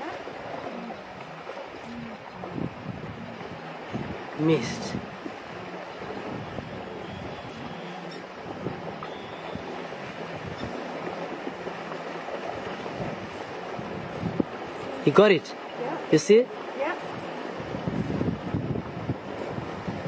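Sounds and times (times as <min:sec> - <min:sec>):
wind on microphone: 0:00.0 - 0:15.1, 0:16.8 - 0:20.0
flowing river water: 0:00.0 - 0:20.0.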